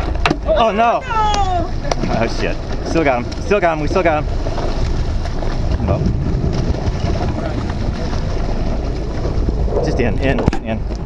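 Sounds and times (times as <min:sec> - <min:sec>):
boat engine running: 0:00.0 - 0:11.0
water washing along hull: 0:00.0 - 0:11.0
wind rumble on microphone: 0:00.0 - 0:11.0.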